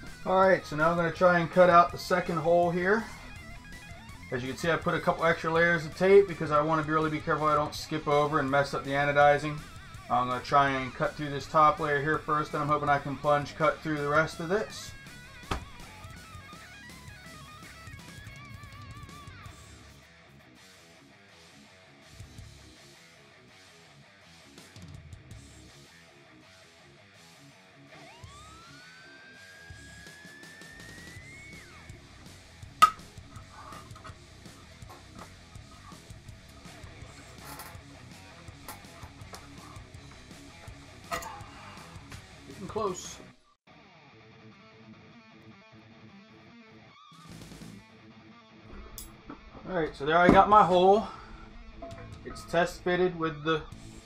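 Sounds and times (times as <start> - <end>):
quiet guitar music: 0.0 - 28.8, 31.2 - 54.0.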